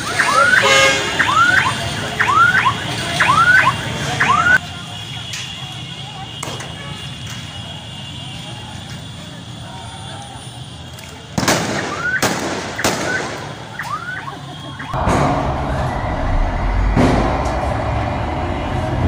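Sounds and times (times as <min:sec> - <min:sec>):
street traffic din: 0:00.0 - 0:19.0
tear gas canisters firing bangs: 0:11.4 - 0:13.7.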